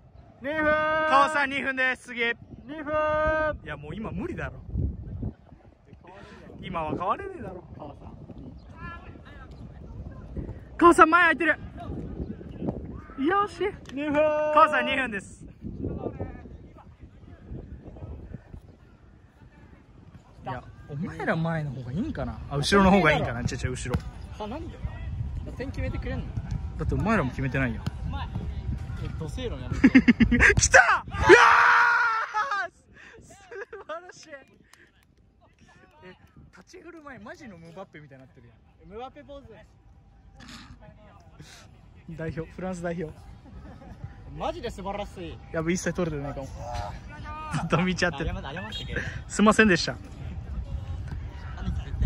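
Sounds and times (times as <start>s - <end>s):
outdoor background noise: 0.0s - 52.0s
person yelling: 30.6s - 32.7s.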